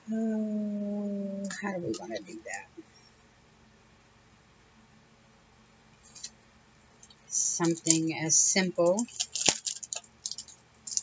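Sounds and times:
paper crackling and rustling: 7.4s - 8.1s, 8.8s - 11.0s.

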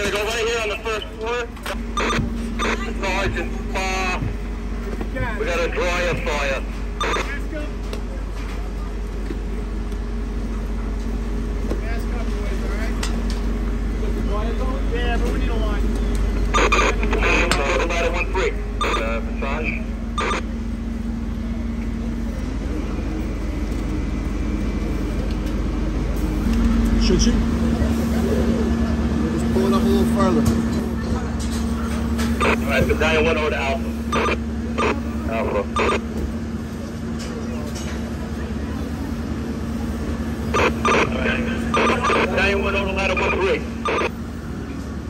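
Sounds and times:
steady low rumble: 0.0s - 37.6s
indistinct voices talking: 0.0s - 45.0s.

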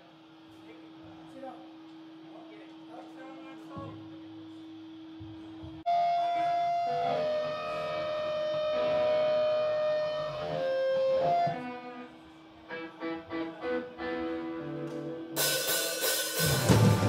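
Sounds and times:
electric guitar long held notes: 5.9s - 17.0s.

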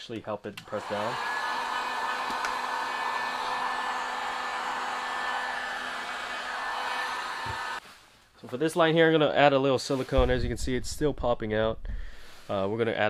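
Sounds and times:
heat gun blowing air: 0.7s - 7.8s.

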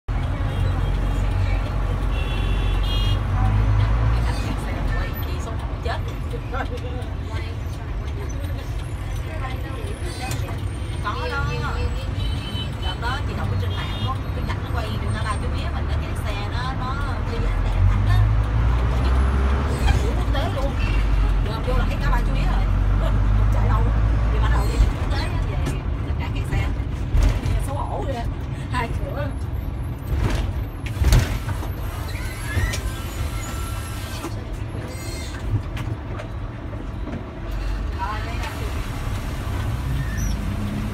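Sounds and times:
bus engine and road rumble: 0.0s - 40.9s.

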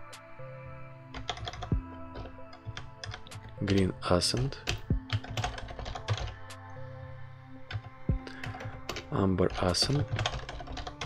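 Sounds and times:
background music: 0.0s - 11.0s
keyboard typing clicks: 1.2s - 3.8s, 4.4s - 6.6s, 7.7s - 11.0s.

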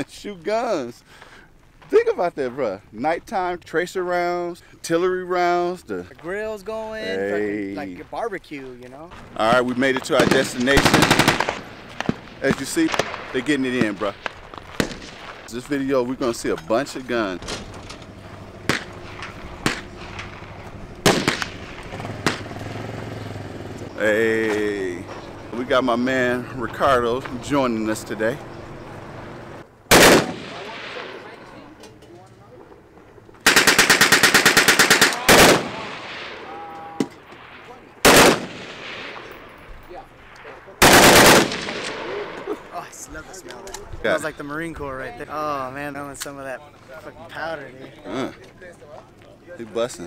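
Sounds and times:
sharp gunshots: 9.2s - 16.3s, 18.5s - 23.1s, 29.9s - 31.6s, 33.4s - 42.6s
machine-gun fire: 9.4s - 15.5s, 18.2s - 23.1s, 29.9s - 31.4s, 33.4s - 36.6s, 37.4s - 39.4s, 40.8s - 42.4s.

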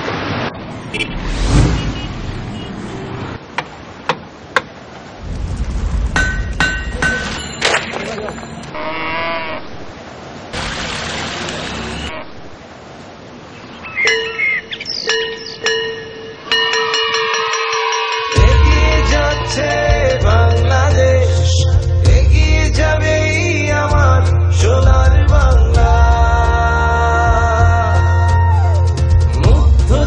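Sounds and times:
steady ringing tones: 6.2s - 8.7s, 14.0s - 19.7s.

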